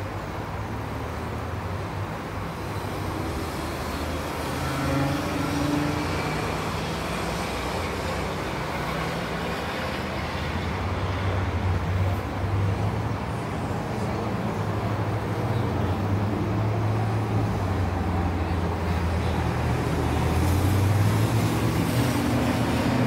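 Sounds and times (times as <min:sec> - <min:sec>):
road traffic engines humming: 0:00.0 - 0:23.0.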